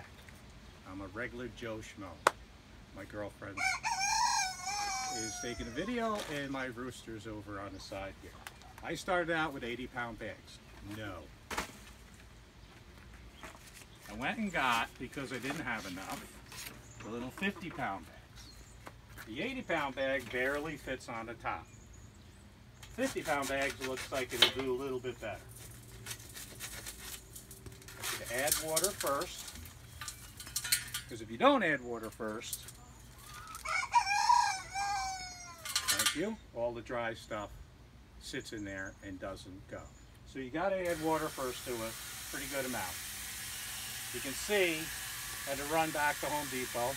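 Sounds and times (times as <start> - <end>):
rooster crowing: 3.6 - 6.1, 33.2 - 36.0
person speaking: 14.1 - 16.4.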